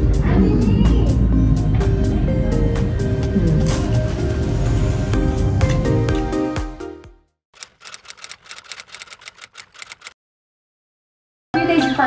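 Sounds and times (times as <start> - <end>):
typewriter key clicks: 7.6 - 10.2.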